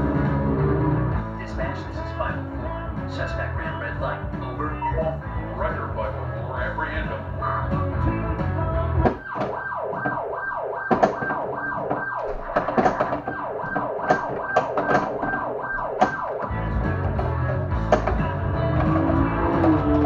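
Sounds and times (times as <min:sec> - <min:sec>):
pinball siren sound effect: 0:09.0 - 0:17.7, 0:18.7 - 0:20.0
pinball playfield clacks: 0:10.8 - 0:20.0.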